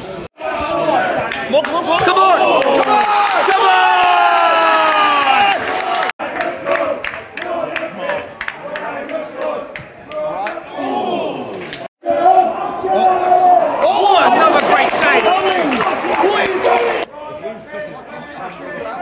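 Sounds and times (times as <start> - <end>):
crowd shouting and chanting: 0.1 - 19.0.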